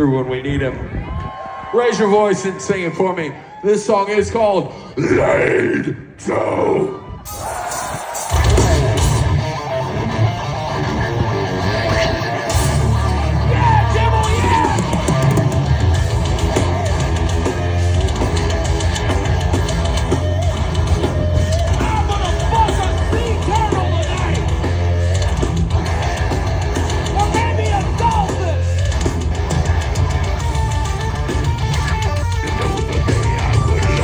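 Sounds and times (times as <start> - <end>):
distorted electric guitars riffing: 4.8 - 34.0
bass guitar: 5.0 - 34.0
pounding drum kit: 7.3 - 10.3, 12.4 - 34.0.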